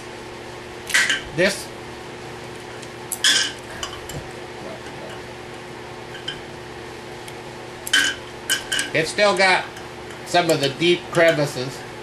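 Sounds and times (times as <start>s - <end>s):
metal tongs clinking on ceramic: 7.9s - 11.5s.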